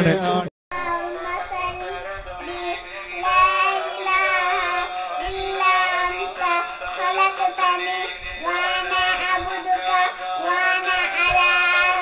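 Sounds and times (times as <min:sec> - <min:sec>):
girl singing: 0:00.7 - 0:12.0.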